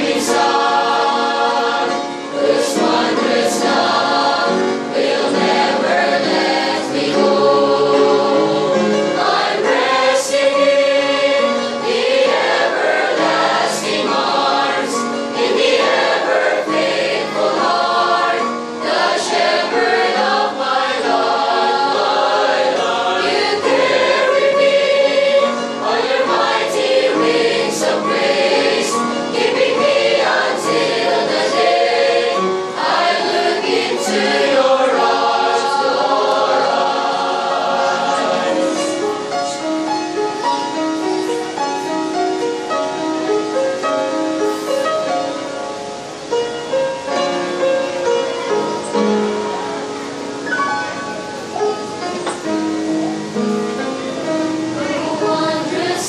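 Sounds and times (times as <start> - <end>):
choir singing a hymn: 0.0 - 56.0.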